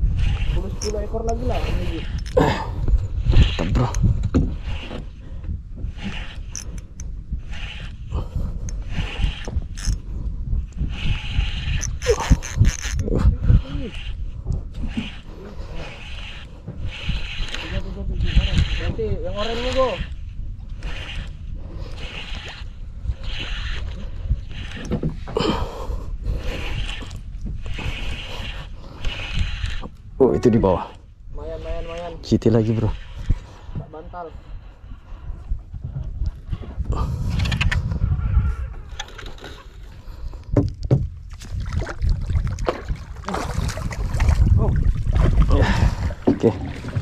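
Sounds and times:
fishing reel whirring: 0.0s - 33.8s, 37.3s - 40.4s
wind rumble on microphone: 0.0s - 47.0s.

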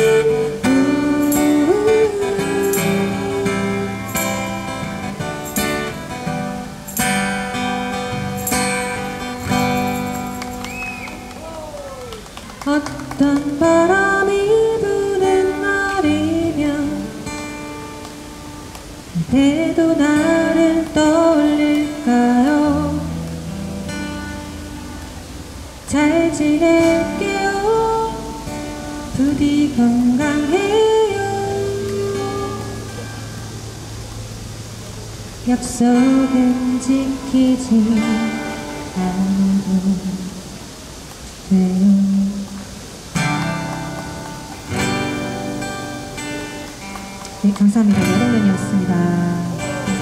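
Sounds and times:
acoustic guitar chord ringing: 0.0s - 11.0s, 13.5s - 40.3s, 43.1s - 50.0s.

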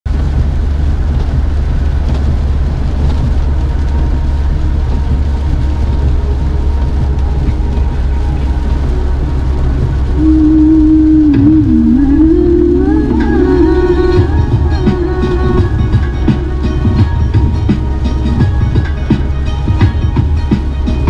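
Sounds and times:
in-cabin road rumble: 0.0s - 21.0s
rain: 0.1s - 21.0s
tyres hissing on wet road: 0.1s - 21.0s.

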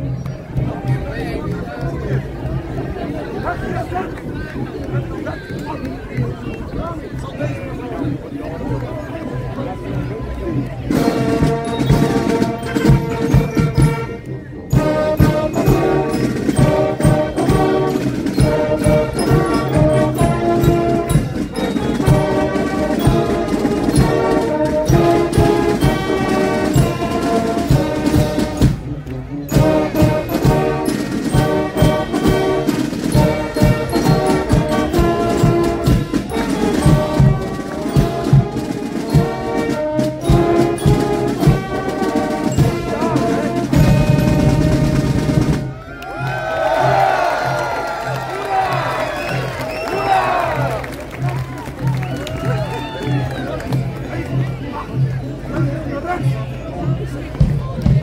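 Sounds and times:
brass marching band playing: 8.0s - 58.0s
crowd cheering and applauding: 45.7s - 54.5s.

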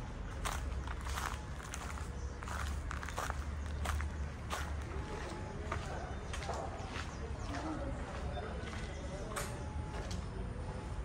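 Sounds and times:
footsteps walking: 0.3s - 10.2s.

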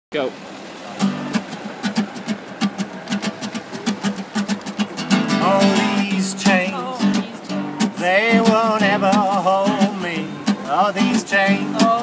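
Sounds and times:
acoustic guitar strumming: 0.8s - 12.0s.

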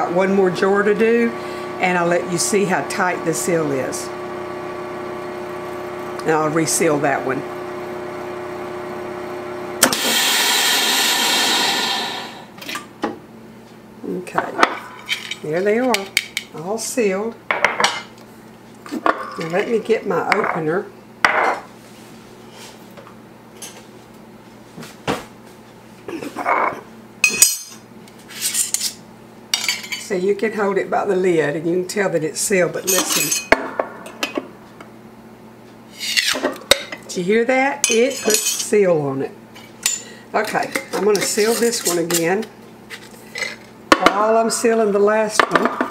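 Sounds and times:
vacuum pump humming: 0.0s - 12.6s.

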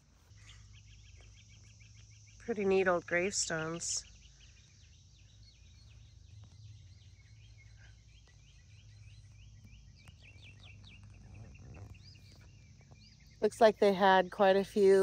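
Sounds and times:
birds chirping: 0.0s - 15.0s
low steady rumble: 0.0s - 15.0s.

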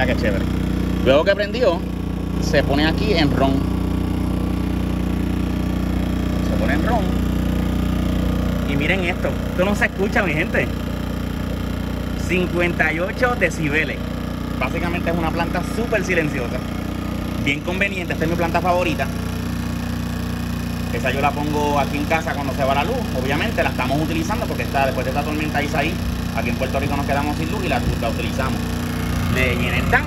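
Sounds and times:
generator engine humming: 0.0s - 30.0s.

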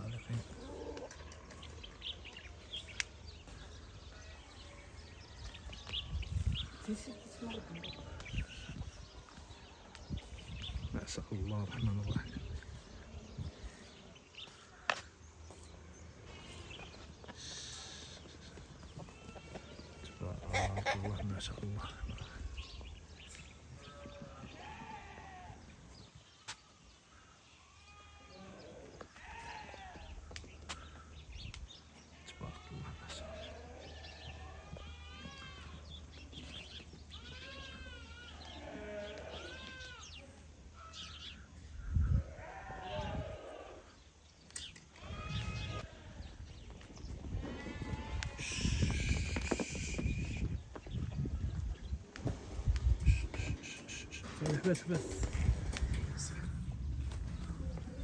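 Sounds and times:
sheep bleating: 37.1s - 40.2s, 45.0s - 46.3s.

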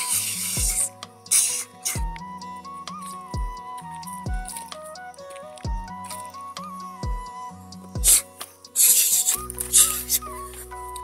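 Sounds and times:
music with flute-like melody: 0.0s - 11.0s.

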